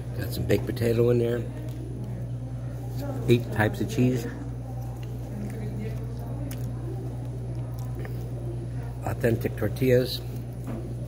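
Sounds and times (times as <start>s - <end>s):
faint voices: 0.0s - 11.0s
man chewing food: 0.0s - 11.0s
steady low hum: 0.0s - 11.0s.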